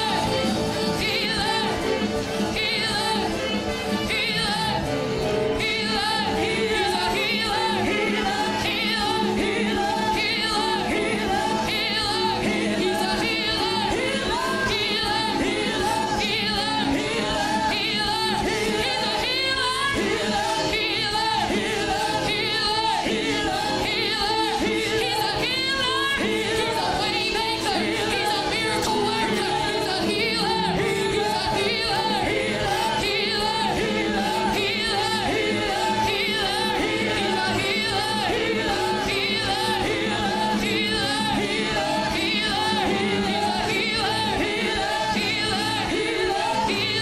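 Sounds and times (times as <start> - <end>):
voices singing worship music: 0.0 - 47.0.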